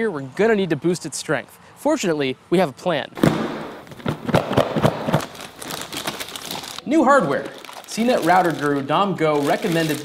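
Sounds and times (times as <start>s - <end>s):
plastic bag crinkling: 3.8s - 10.0s.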